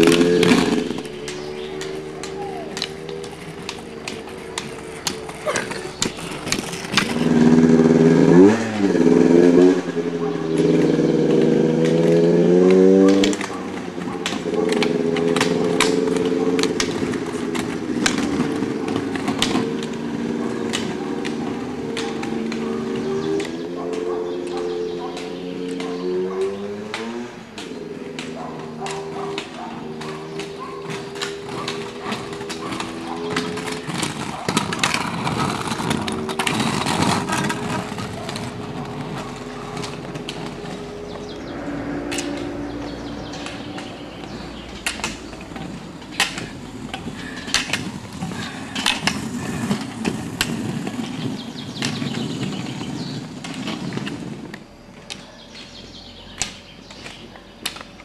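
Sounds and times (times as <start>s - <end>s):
roller skis rolling on asphalt: 0.0s - 58.0s
ski pole tips clicking on road: 10.5s - 52.1s, 56.4s - 58.0s.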